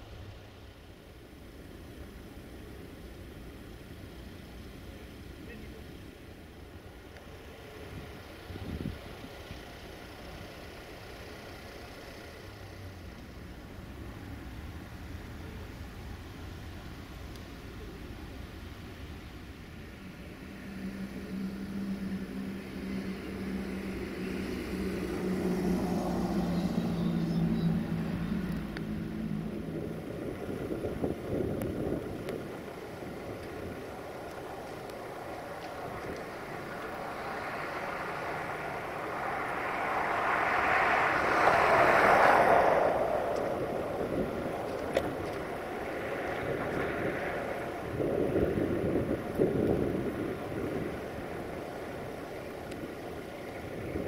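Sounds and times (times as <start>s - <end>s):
locomotive diesel engine drone: 0.0s - 54.0s
rush of noise: 17.6s - 54.0s.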